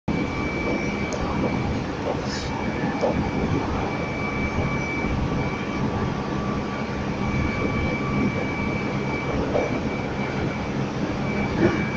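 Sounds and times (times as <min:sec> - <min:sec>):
train cab mechanical noise: 0:00.1 - 0:11.9.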